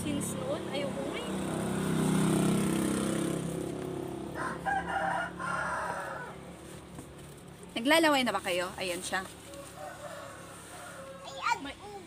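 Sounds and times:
rooster crowing: 4.3 - 6.4, 9.5 - 11.4.

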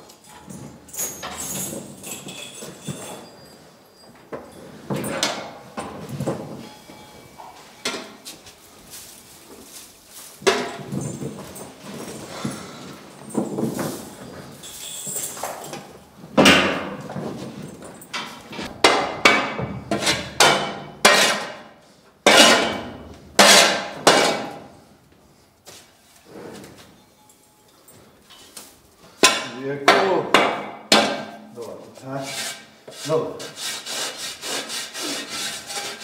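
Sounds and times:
tool scraping concrete floor: 18.3 - 24.6, 31.6 - 36.0.

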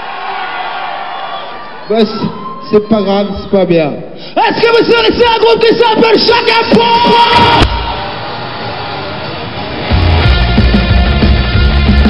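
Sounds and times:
concert crowd noise: 0.0 - 12.0
rock band playing loudly: 7.8 - 12.0.

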